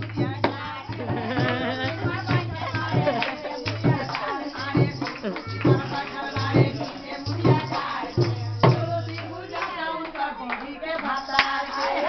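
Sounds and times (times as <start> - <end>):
people clapping along: 0.0 - 12.0
singing voices: 0.0 - 12.0.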